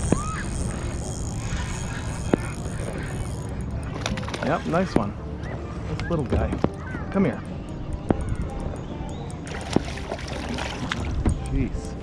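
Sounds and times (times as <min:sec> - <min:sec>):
water: 0:00.0 - 0:12.0
wind: 0:00.0 - 0:12.0.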